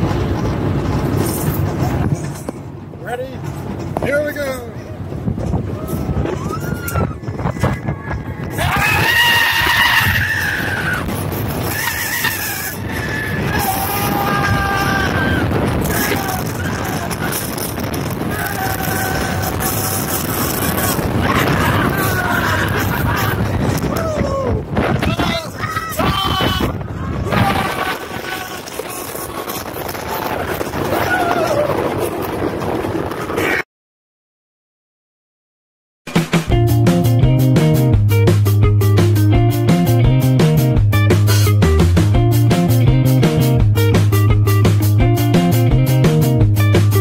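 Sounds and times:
air buffeting microphone: 0.0 - 33.6
roller coaster train running: 0.0 - 33.6
riders screaming: 5.7 - 32.4.

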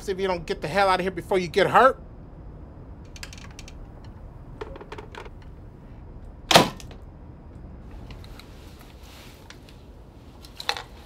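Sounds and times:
faint clicks and knocks: 3.0 - 5.6
front door slamming: 6.5 - 7.0.

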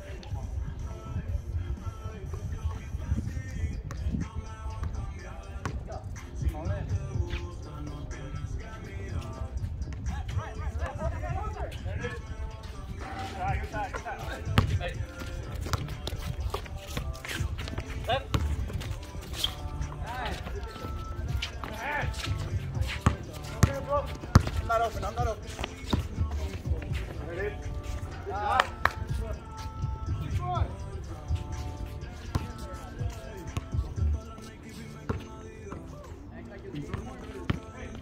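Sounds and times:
background music: 0.0 - 38.0
background voices: 0.0 - 38.0
basketball bouncing on concrete: 14.4 - 18.9, 21.3 - 24.9, 36.9 - 37.8.

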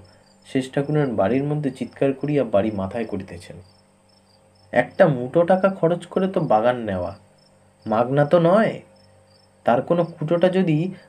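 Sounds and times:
man reading aloud: 0.0 - 3.7, 4.7 - 7.2, 7.8 - 8.9, 9.7 - 11.0
faint high chirping: 0.0 - 11.0.

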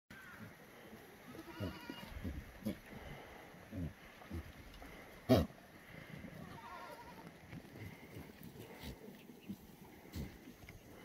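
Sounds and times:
goats bleating: 0.1 - 3.4, 4.3 - 9.0.

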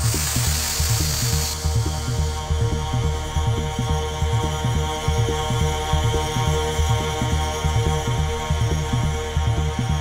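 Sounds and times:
bright wash of high noise: 0.0 - 2.1
trance music from vinyl: 0.0 - 10.0.

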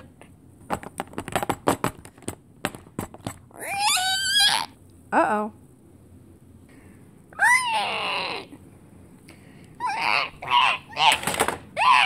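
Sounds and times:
high vocal cry: 7.3 - 8.6, 9.8 - 12.0.

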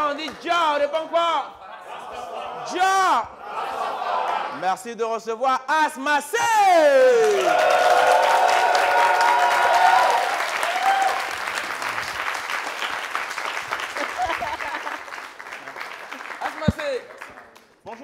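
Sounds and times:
long held shout: 6.4 - 11.3
audience clapping and cheering: 6.6 - 18.0.

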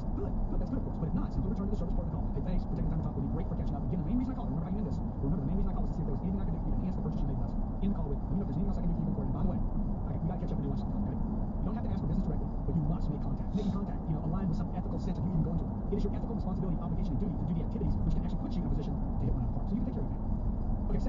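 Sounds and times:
car road and engine noise: 0.0 - 21.0
indistinct voice: 13.1 - 15.3.

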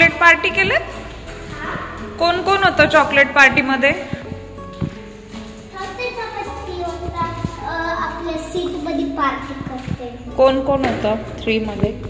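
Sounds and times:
girl singing: 5.8 - 9.0.

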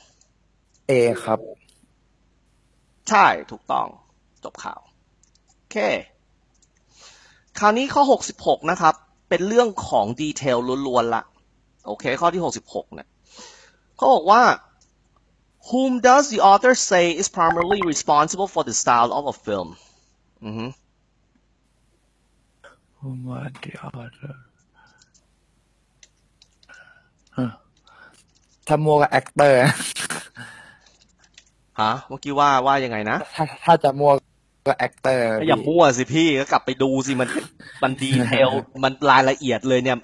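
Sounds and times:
man's short vocal sound: 0.9 - 1.5, 29.1 - 30.6, 34.0 - 35.7, 37.1 - 38.6
man speaking: 0.9 - 1.6, 17.3 - 18.4, 23.0 - 24.4, 28.7 - 30.7, 31.8 - 40.0.

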